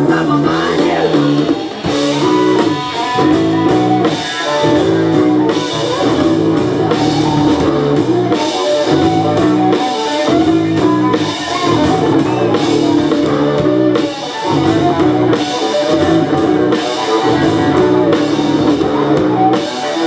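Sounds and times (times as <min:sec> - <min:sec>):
live band playing: 0:00.0 - 0:20.0.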